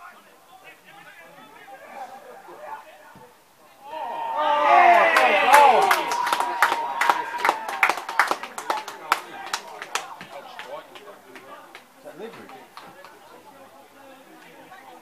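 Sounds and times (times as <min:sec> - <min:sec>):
crowd cheering and shouting: 0:03.7 - 0:10.6
hand-clapping: 0:04.9 - 0:13.2.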